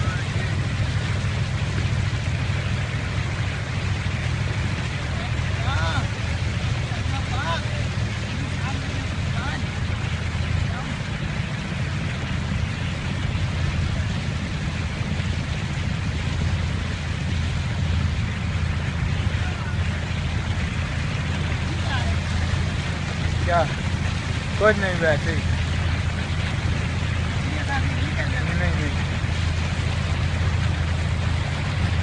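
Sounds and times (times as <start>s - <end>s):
boat engine drone: 0.0s - 32.0s
water hiss: 0.0s - 32.0s.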